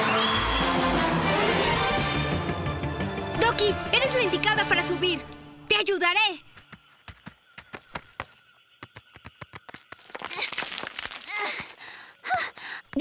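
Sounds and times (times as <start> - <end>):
cartoon clicking footfalls: 6.5 - 11.7.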